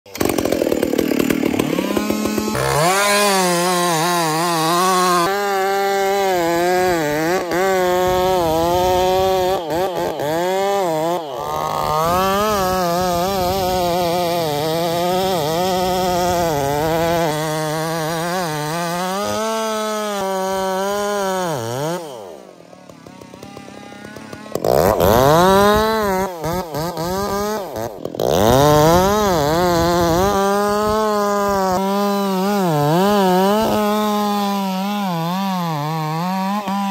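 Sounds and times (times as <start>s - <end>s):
chainsaw cutting wood: 0.1s - 36.9s.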